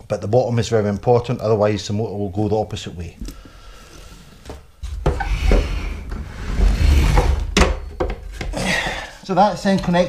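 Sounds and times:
plastic rubbing and scraping: 3.8s - 8.6s.

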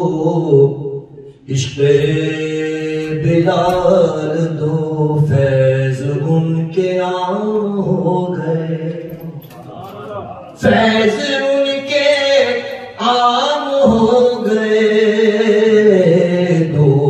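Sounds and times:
man chanting devotional poem: 0.0s - 17.0s.

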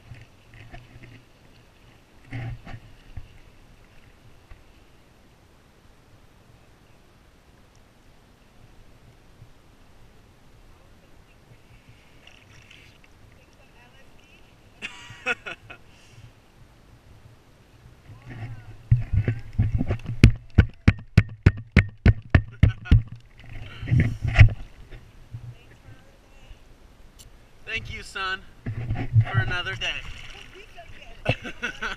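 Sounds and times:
water lapping against camera: 28.6s - 31.9s
water splash: 29.3s - 31.9s.

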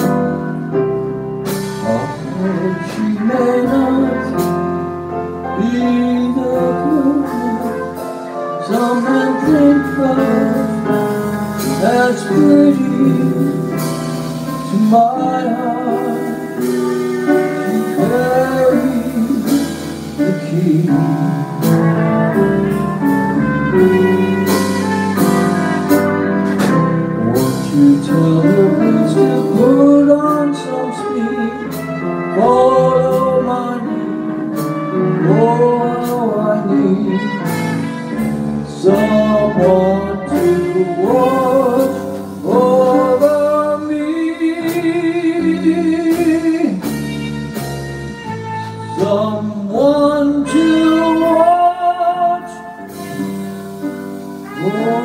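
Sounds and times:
drums: 0.0s - 55.0s
electric bass: 0.0s - 55.0s
grand piano: 0.0s - 55.0s
trumpet melody: 0.0s - 55.0s.

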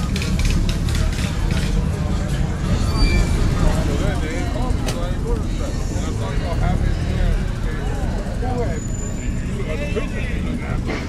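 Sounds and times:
low engine rumble: 0.0s - 11.0s
people talking: 0.0s - 11.0s.

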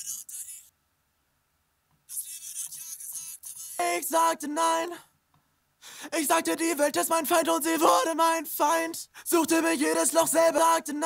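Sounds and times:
thin rap vocal mix: 0.0s - 0.7s, 2.1s - 5.1s, 6.0s - 11.0s.

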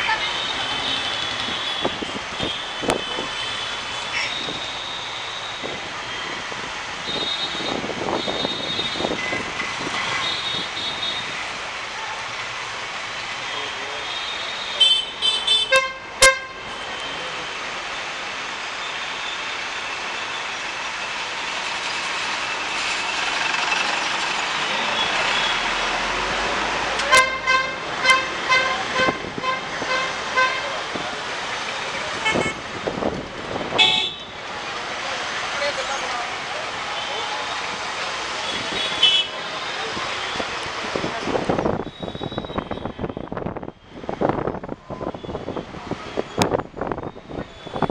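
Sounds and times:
steady traffic hum: 0.0s - 47.9s
vehicle horn honks: 14.8s - 16.6s, 27.1s - 30.7s, 32.2s - 32.6s, 33.8s - 34.4s, 38.5s - 39.3s.

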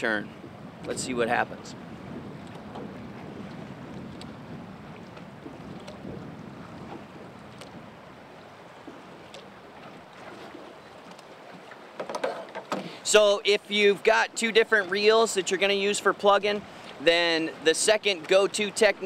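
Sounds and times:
wind buffeting microphone: 0.0s - 11.8s
river water rushing: 1.8s - 19.0s.

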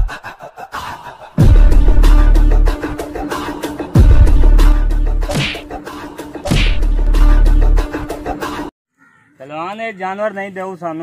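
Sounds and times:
background music with beat: 1.4s - 8.7s
fight hit: 6.5s - 6.9s.

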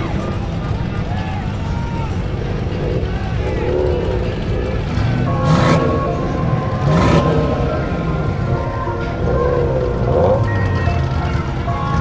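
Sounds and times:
car engines rumbling and revving: 0.0s - 12.0s
faint music: 0.0s - 12.0s
faint voices: 0.0s - 12.0s.

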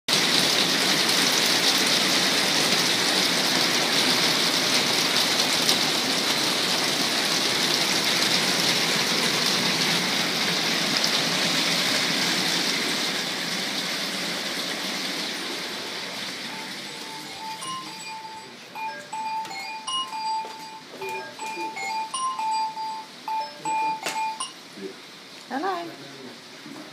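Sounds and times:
heavy rain pouring: 0.1s - 26.9s.

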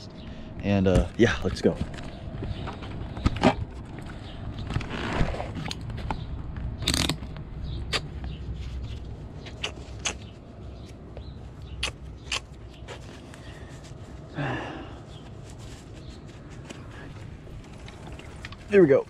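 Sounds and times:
sharp clicks and scrapes: 1.9s - 10.2s
fabric rustling: 15.1s - 19.0s.

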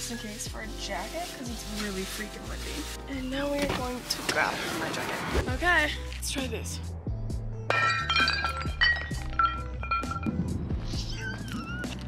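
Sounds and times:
plate smashing on rock: 7.7s - 10.3s
shards clinking: 7.7s - 10.4s.

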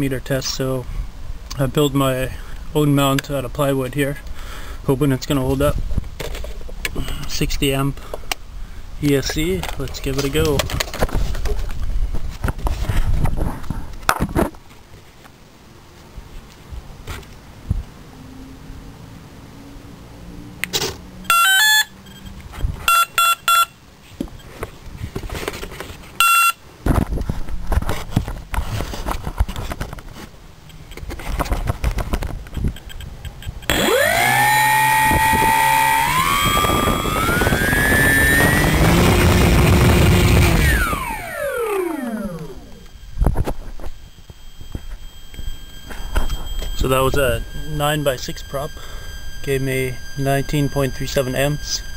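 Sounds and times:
speed controller beeps: 21.3s - 23.7s, 32.7s - 51.9s
electric motor whine: 33.7s - 51.9s.

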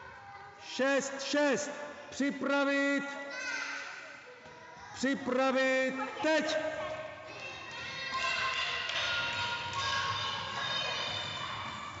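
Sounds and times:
children shouting in echoing hall: 3.1s - 4.3s, 6.0s - 12.0s.

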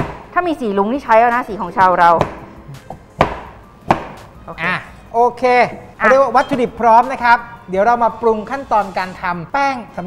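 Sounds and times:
cleaver chopping on wooden board: 2.2s - 4.2s.

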